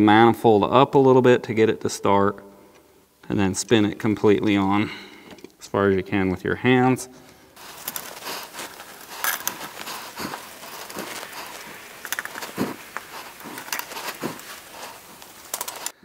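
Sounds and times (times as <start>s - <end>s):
small metallic clicks of nuts: 7.7s - 16.0s.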